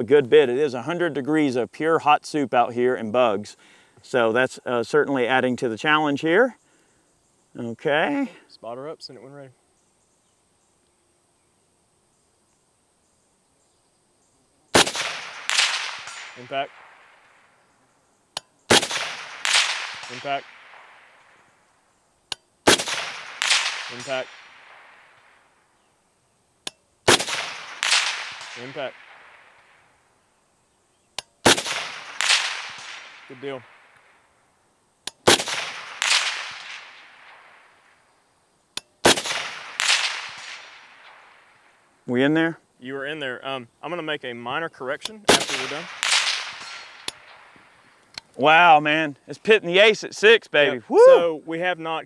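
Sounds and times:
suppressed rifle shot: 0:14.7 - 0:17.5, 0:18.7 - 0:21.5, 0:22.6 - 0:25.5, 0:27.1 - 0:29.9, 0:31.4 - 0:34.1, 0:35.0 - 0:38.0, 0:39.0 - 0:41.7, 0:45.3 - 0:47.9
loud report echoing: 0:23.9 - 0:24.3.

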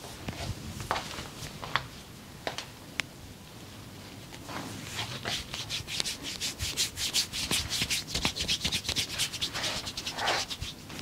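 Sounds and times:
hands rubbing over skin: 0:05.0 - 0:10.8.

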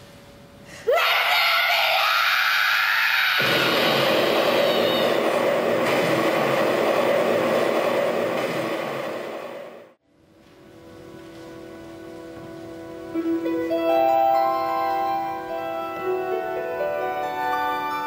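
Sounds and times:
explosion roar: 0:03.2 - 0:09.9.

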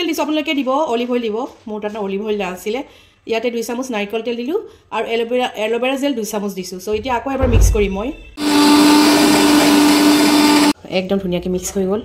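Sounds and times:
electric mixer grinder whirring: 0:08.4 - 0:10.8.

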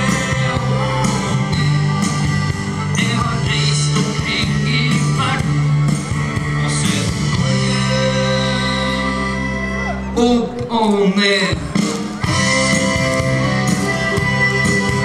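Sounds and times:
steady bass line: 0:00.0 - 0:15.0.

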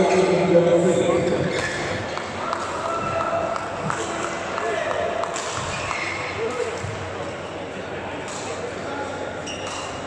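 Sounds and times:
hubbub of voices: 0:00.0 - 0:10.0.

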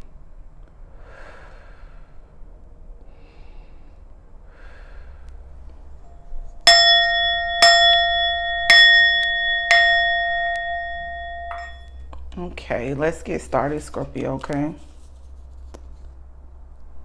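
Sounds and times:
soft breathing: 0:00.9 - 0:06.2
bell ringing: 0:06.1 - 0:12.0.

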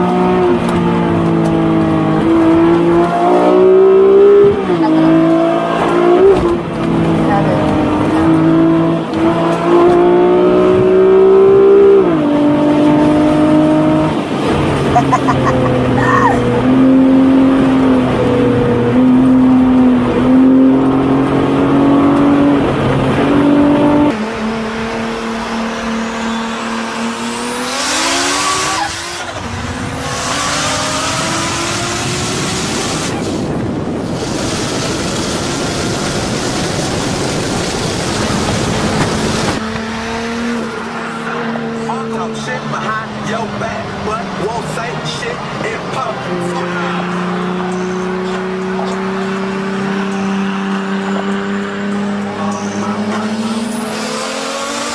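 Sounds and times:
car engine accelerating: 0:00.0 - 0:54.9.

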